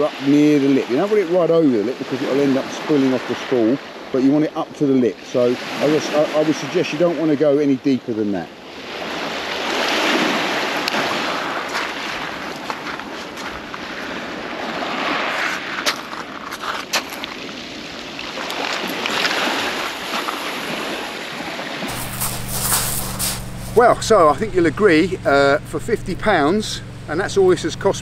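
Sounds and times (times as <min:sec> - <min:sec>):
small waves washing over shingle: 0:08.7 - 0:25.7
steady low hum: 0:21.9 - 0:28.0.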